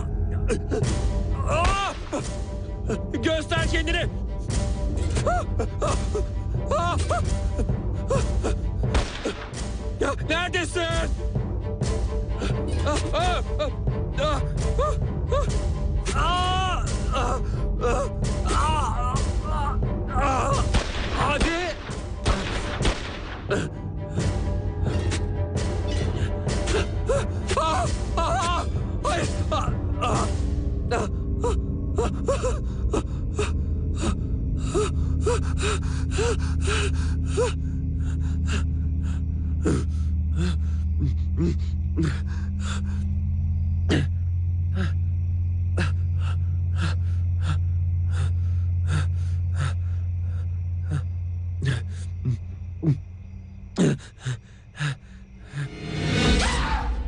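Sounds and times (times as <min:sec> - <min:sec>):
low droning film score: 0:00.0 - 0:57.0
person gasping and panting: 0:30.9 - 0:43.1, 0:45.8 - 0:53.1, 0:53.8 - 0:55.8.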